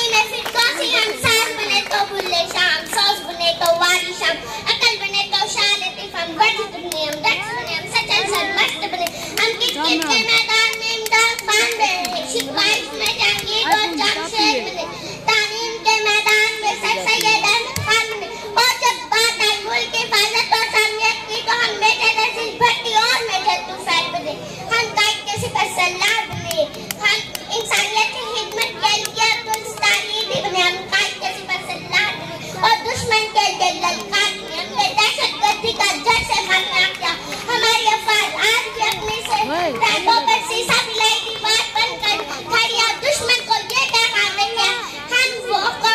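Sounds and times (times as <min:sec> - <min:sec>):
girl speaking into a microphone: 0:00.0 - 0:45.9.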